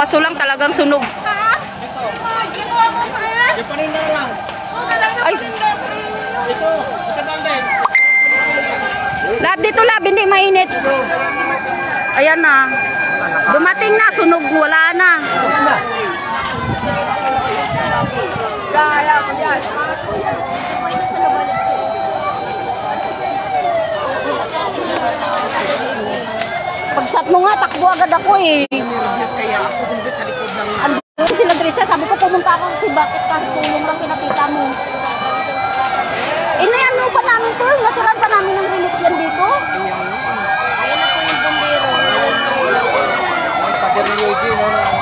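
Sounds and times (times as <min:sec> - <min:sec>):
fire truck siren wailing: 0:00.0 - 0:45.0.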